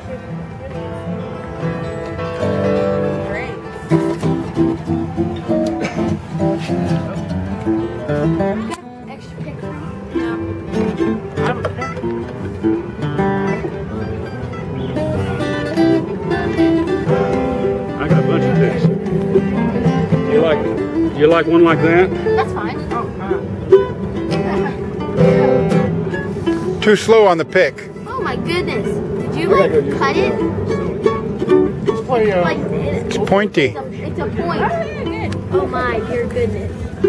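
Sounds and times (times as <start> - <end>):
acoustic guitar: 0.0 - 37.0
banjo: 2.2 - 26.8.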